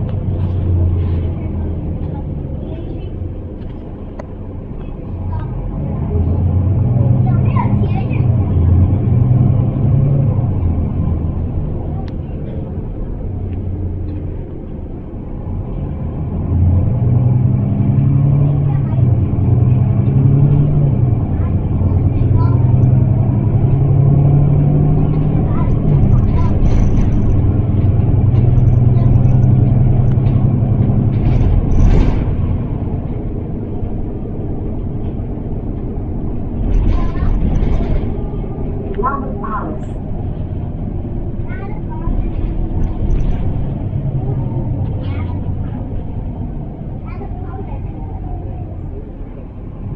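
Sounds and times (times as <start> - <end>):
bus diesel engine droning: 0.0 - 49.9.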